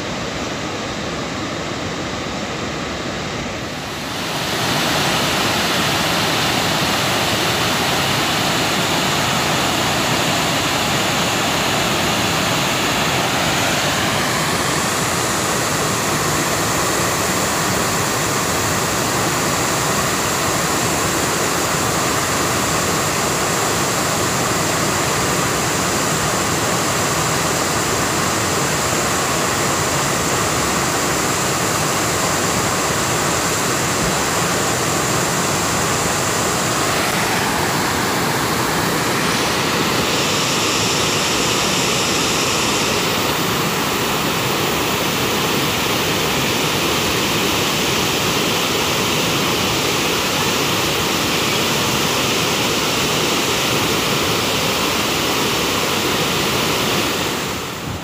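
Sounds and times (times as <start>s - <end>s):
water cascading down spillway: 3.6s - 58.0s.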